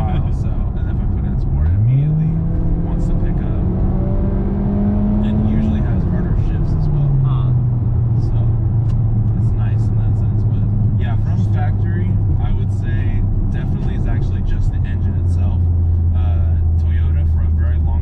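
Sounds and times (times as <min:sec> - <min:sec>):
car engine droning in cabin: 0:00.0 - 0:18.0.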